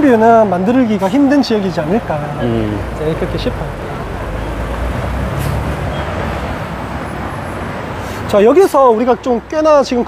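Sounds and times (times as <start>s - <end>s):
city road traffic: 0.0s - 10.0s.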